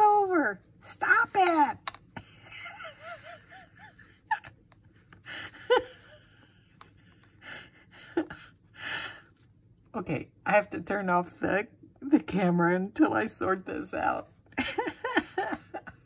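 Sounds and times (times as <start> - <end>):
woman giggling: 2.2 - 6.5, 7.4 - 8.6, 14.6 - 16.0.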